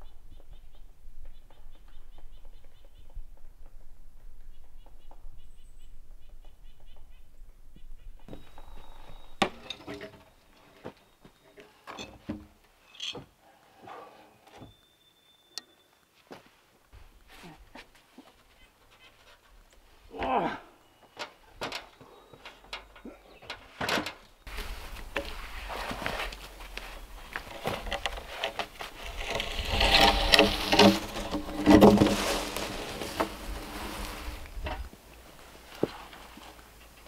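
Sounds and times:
wooden knocks and thuds: 29.2 - 33.6.

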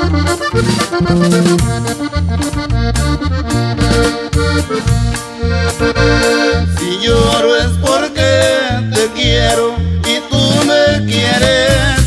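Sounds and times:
steady bass beat: 0.0 - 6.8
accordion playing: 0.0 - 12.0.

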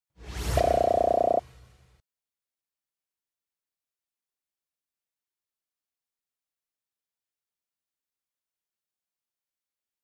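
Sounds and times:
whoosh: 0.2 - 2.0
buzzy pulsing synth tone: 0.4 - 1.4.

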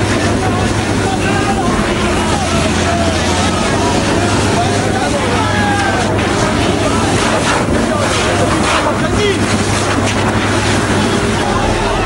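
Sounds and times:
crowd voices: 0.0 - 12.0
water cannon jet spraying: 0.0 - 12.0.

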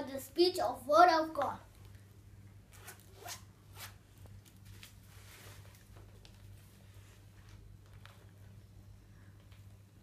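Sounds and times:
zip being pulled open: 2.7 - 4.0.

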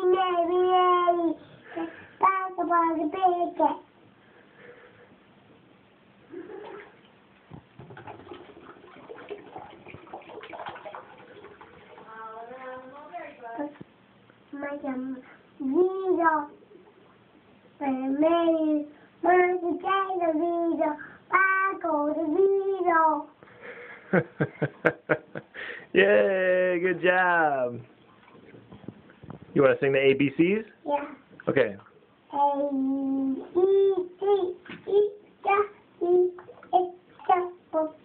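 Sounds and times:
toddler singing: 0.0 - 1.4, 2.2 - 3.9, 14.6 - 16.6, 17.8 - 23.4, 32.3 - 38.0
child vocal sound: 0.0 - 3.6, 32.3 - 38.0
bath water sloshing: 6.5 - 13.1.

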